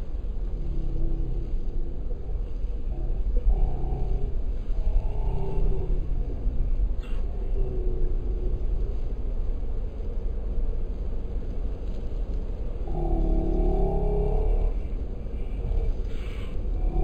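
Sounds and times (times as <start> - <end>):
deep drawn-out pitched sound: 0.0 - 17.0
steady low rumble: 0.0 - 17.0.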